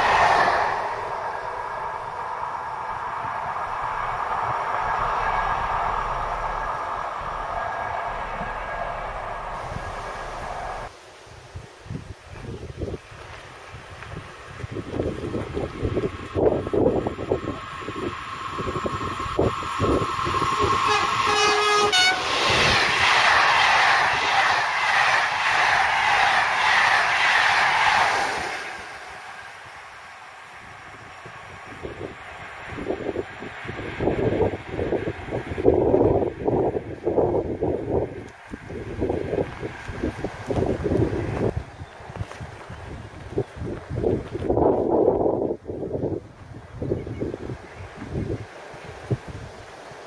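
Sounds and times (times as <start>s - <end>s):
electric locomotive high tone: 0.0s - 10.9s, 16.4s - 27.3s
train wheels rushing on rails: 0.0s - 10.9s, 13.1s - 46.8s
wind buffeting microphone: 0.0s - 50.0s.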